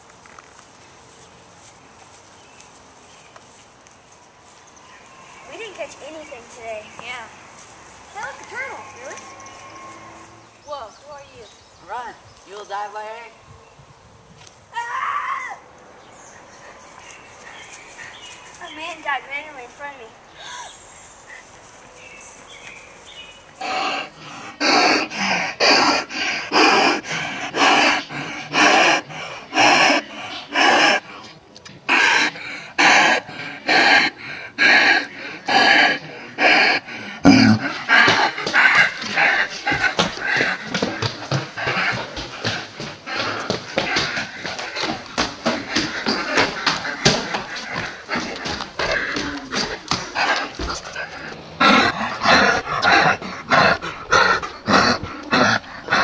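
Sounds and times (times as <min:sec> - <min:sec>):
animal calls: 0:08.1 - 0:11.5, 0:23.6 - 0:56.0.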